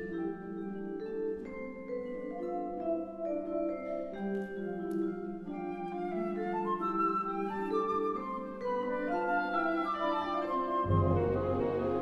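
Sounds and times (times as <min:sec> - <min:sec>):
symphony orchestra playing: 0:05.4 - 0:12.0.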